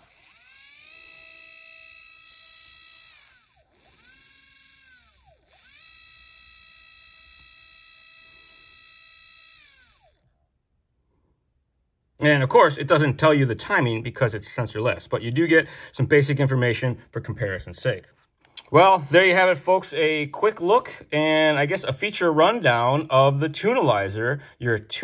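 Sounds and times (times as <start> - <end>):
electric motor high-pitched whine: 0.0 - 10.4.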